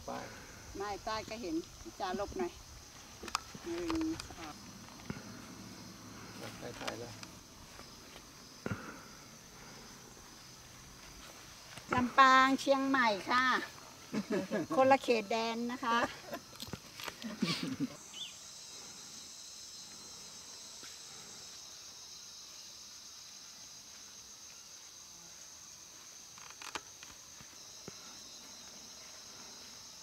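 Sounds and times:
voices: 0.0s - 9.9s, 11.7s - 16.5s
high-pitched insect drone: 0.0s - 30.0s.

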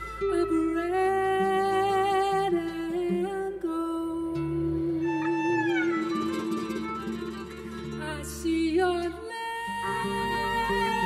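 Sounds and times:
plucked guitars: 0.0s - 11.0s
double bass: 2.5s - 9.2s
violin melody: 4.4s - 11.0s.

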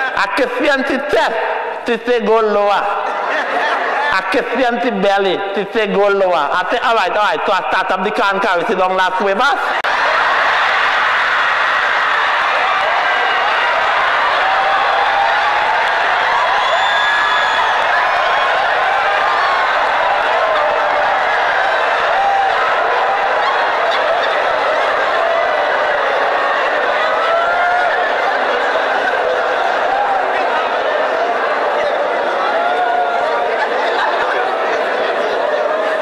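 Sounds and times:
large audience laughing: 2.9s - 4.6s, 9.2s - 13.1s, 22.9s - 26.3s, 26.9s - 36.0s.

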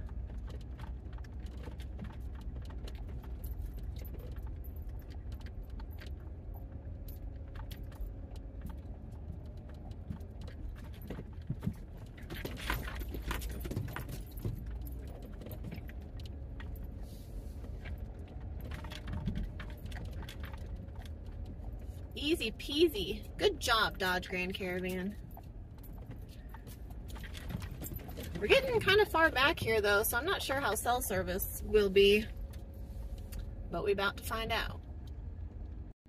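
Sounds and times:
vehicle engine and tyres rumbling: 0.0s - 36.0s
loose items jingling and rattling: 9.9s - 32.8s.

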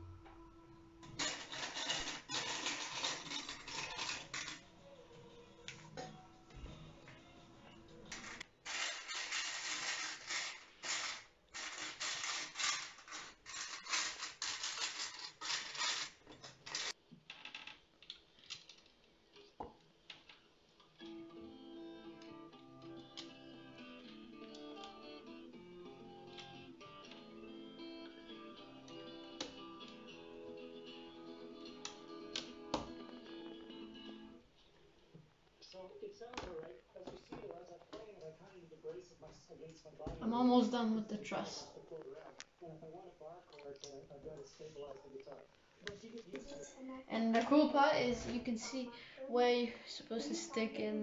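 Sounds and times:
plastic toy bricks clattering: 1.2s - 4.7s, 8.1s - 18.9s
light clicks of plastic pieces: 18.0s - 19.4s.

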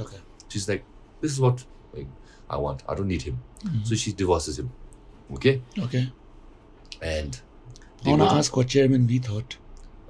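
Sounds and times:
person speaking: 6.9s - 8.8s.

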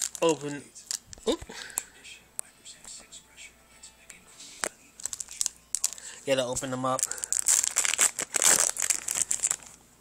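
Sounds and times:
plastic packaging crinkling: 0.0s - 1.9s, 4.6s - 9.8s.

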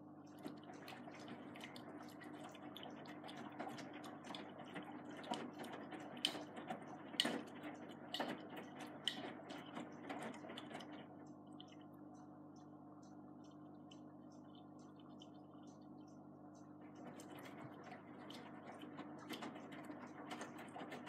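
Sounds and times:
washing machine motor hum: 0.0s - 21.0s
water sloshing in drum: 0.3s - 11.9s, 16.8s - 21.0s.

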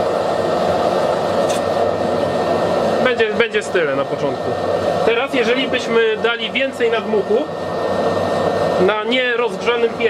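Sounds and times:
forge blower and gas flame rushing: 0.0s - 10.0s.

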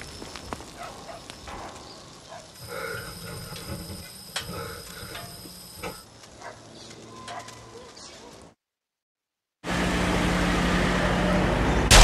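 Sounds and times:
road noise: 9.7s - 12.0s.

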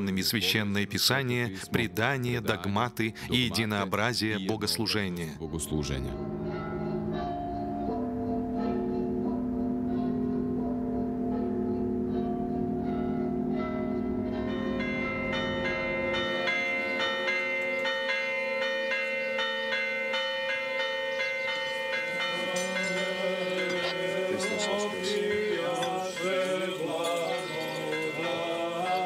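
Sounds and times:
church bells ringing: 0.0s - 29.0s.

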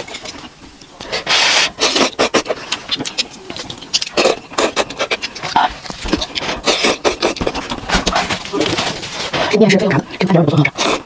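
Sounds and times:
wet chewing: 0.0s - 11.0s
slurping noodles: 1.1s - 2.8s.

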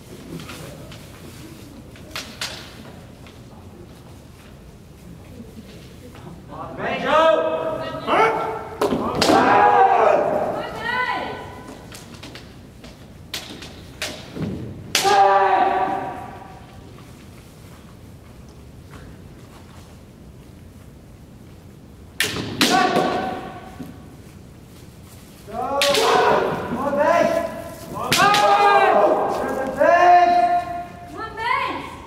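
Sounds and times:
long shout: 7.1s - 11.5s, 15.0s - 16.6s, 28.1s - 32.0s
sharp crack: 14.9s - 15.2s, 25.8s - 26.5s
bamboo sword strikes: 14.9s - 15.3s, 22.2s - 23.5s, 25.8s - 26.6s.

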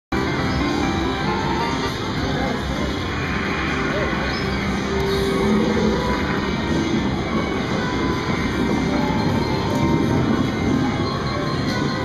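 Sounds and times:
busy casino floor din: 0.1s - 12.0s
slot machine electronic music: 0.1s - 12.0s.

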